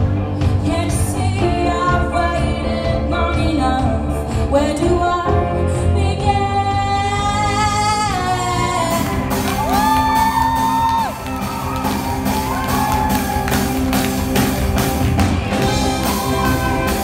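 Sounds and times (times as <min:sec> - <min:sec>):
live rock band: 0:00.0 - 0:17.0
drums and cymbals: 0:07.2 - 0:17.0.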